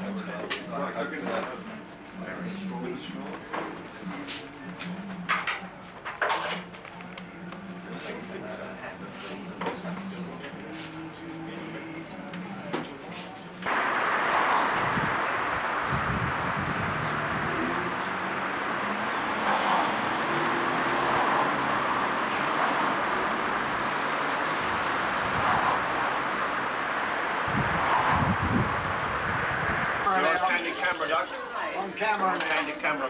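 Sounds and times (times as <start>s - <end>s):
passing traffic noise: 0.0s - 32.6s
passing vehicle rumble: 7.0s - 30.3s.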